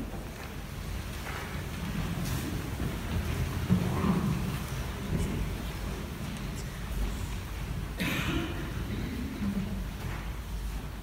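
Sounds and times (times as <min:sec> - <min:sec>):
people shuffling about: 0:00.0 - 0:11.0.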